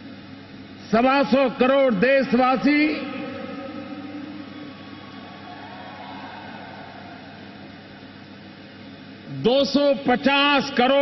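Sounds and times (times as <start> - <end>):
crowd cheering: 3.6 - 8.6.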